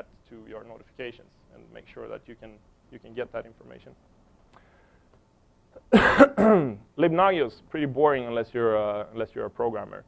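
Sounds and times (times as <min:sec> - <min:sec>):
man coughing: 0:05.8 - 0:06.8.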